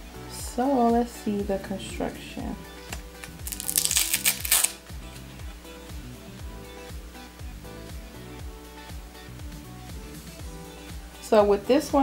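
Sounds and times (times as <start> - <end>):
background music with steady beat: 0.0 - 12.0
crisp rustling and crinkling: 3.2 - 4.8.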